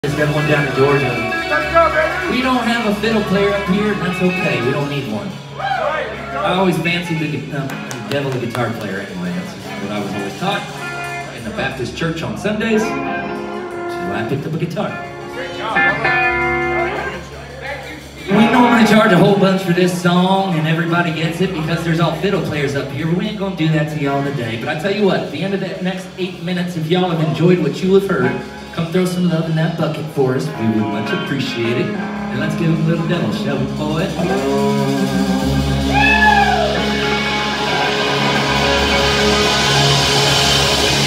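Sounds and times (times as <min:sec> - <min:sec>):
electric guitar chord ringing: 0:00.0 - 0:05.6, 0:07.4 - 0:11.7, 0:12.6 - 0:20.6, 0:30.3 - 0:41.0.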